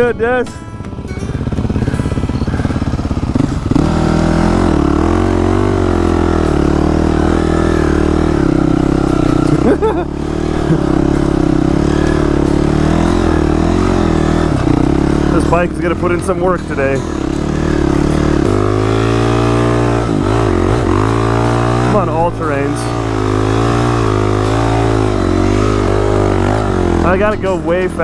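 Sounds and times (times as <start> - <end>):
dirt bike engine revving: 1.0 - 28.0.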